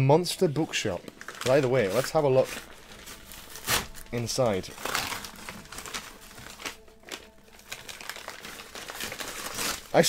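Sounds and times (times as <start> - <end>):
padded envelope crinkling: 0.6 - 10.0.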